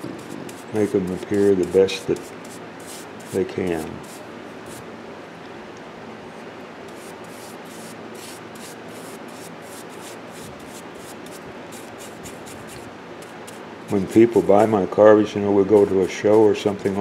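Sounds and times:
brush scrubbing wood: 0:00.0 - 0:04.8, 0:06.9 - 0:13.6
steady low hum: 0:00.0 - 0:17.0.

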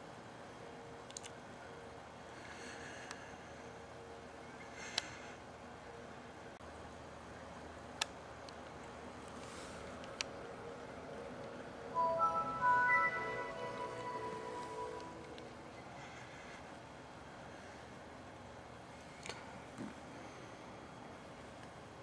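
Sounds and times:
faint steady hiss: 0:00.0 - 0:22.0
rising startup chime: 0:12.0 - 0:15.8.

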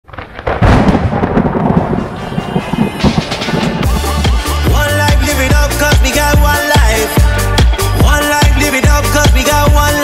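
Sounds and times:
thunder rumbling: 0:00.0 - 0:05.0.

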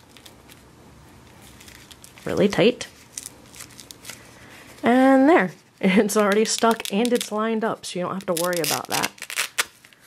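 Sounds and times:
plastic liner crinkling and clicking: 0:06.1 - 0:07.4, 0:08.1 - 0:10.0.

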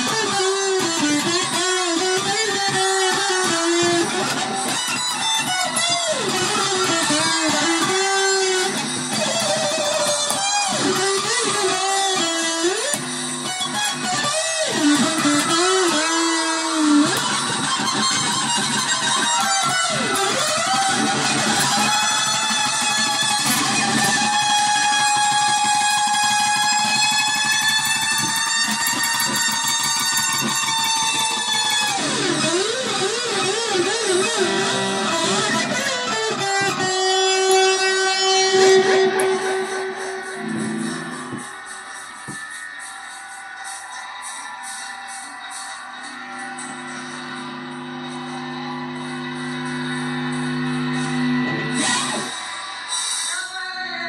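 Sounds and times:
electric guitar through amplifier: 0:00.0 - 0:54.0.

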